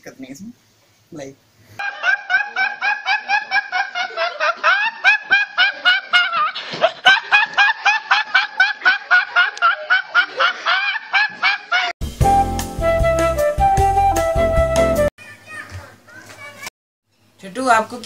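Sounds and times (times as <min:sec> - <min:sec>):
young man laughing uncontrollably: 0:01.8 - 0:11.9.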